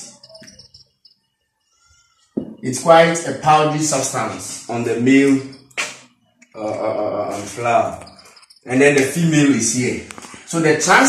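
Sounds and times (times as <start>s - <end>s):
whiteboard marker squeaking: 0.0s - 1.2s, 3.6s - 10.3s.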